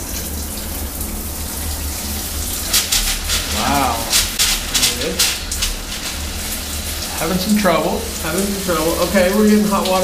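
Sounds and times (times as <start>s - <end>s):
shower water spraying: 0.0s - 10.0s.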